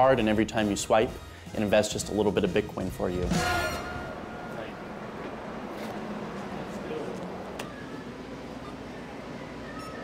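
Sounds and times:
shop room noise: 0:00.0 - 0:10.0
payment terminal beep: 0:07.6 - 0:10.0.

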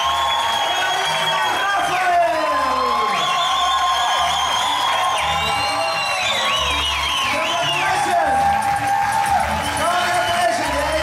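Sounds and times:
dance music: 0:00.0 - 0:11.0.

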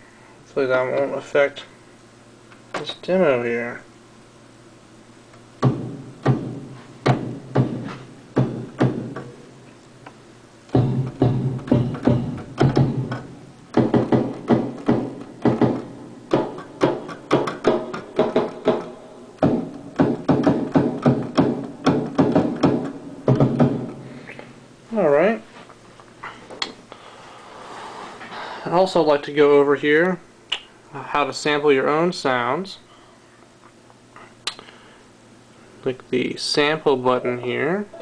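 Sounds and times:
kick drum hits: 0:05.6 - 0:09.4, 0:10.7 - 0:24.0.

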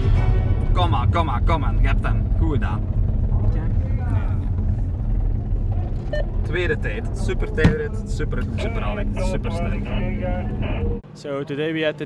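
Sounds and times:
car engine rumble: 0:00.0 - 0:11.0
road noise inside car: 0:00.6 - 0:11.1.

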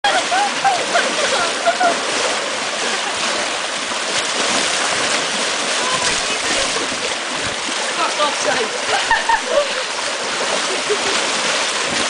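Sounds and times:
pool water churning and splashing: 0:00.0 - 0:12.0.

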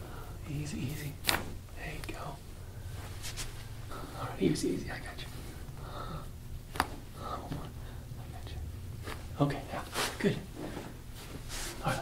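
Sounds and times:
faint whispering: 0:00.0 - 0:02.4, 0:03.9 - 0:06.3, 0:07.2 - 0:08.7.

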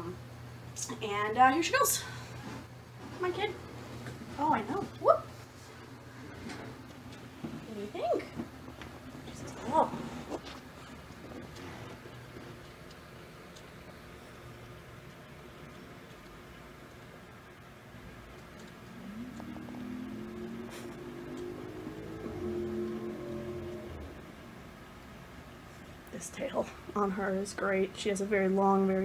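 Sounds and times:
low humming drone: 0:16.4 - 0:25.5.

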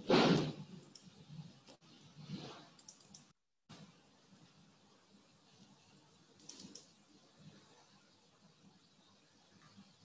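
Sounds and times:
computer mouse clicks: 0:00.4 - 0:01.8, 0:02.7 - 0:03.4, 0:06.4 - 0:07.1.

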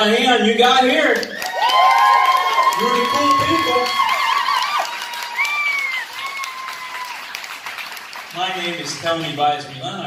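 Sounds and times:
audience applauding and cheering: 0:01.0 - 0:10.0.

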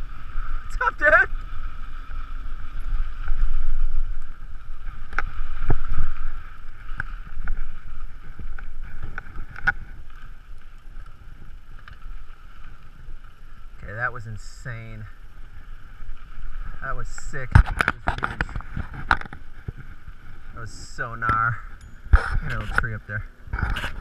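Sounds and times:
wind rushing over camera: 0:00.0 - 0:13.3, 0:15.6 - 0:24.0.

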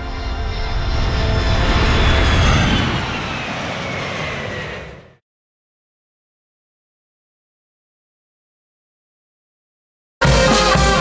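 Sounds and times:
airplane flying past: 0:00.0 - 0:05.2.

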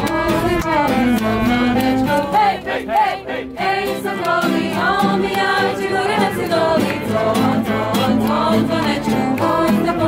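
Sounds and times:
voices singing along: 0:00.0 - 0:10.0.

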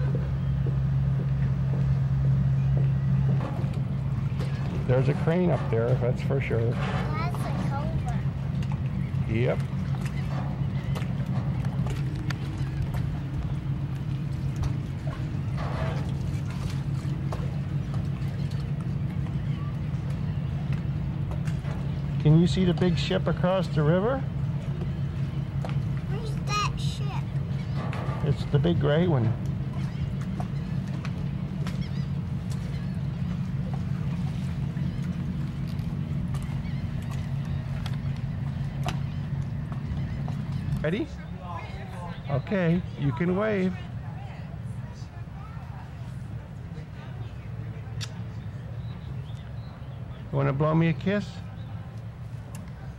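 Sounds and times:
boat engine drone: 0:00.0 - 0:52.9.

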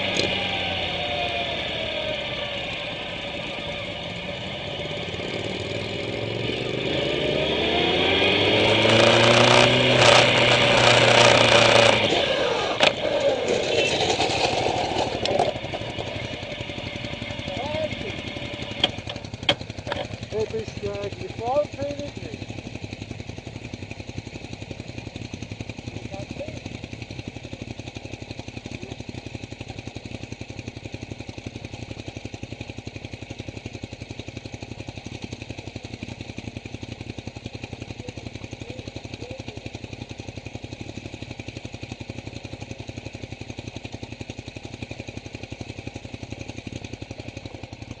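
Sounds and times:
motorcycle engine idling: 0:00.0 - 0:48.0.

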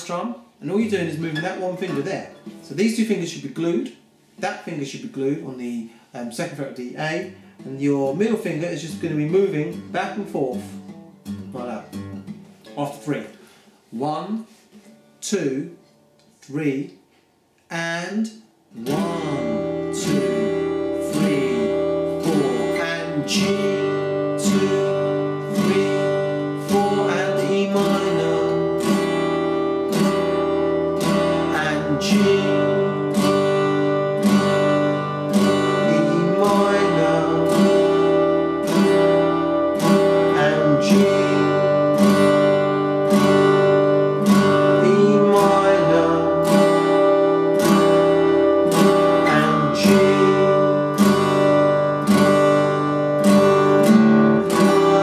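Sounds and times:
acoustic guitar strumming chords: 0:00.0 - 0:17.2, 0:18.2 - 0:55.0.

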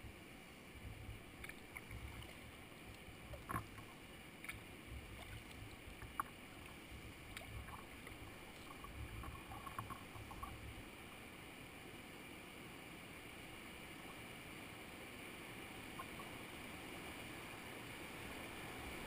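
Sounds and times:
water lapping against kayak hull: 0:00.8 - 0:10.9
small clicks and drips: 0:01.0 - 0:10.8, 0:15.9 - 0:16.6.

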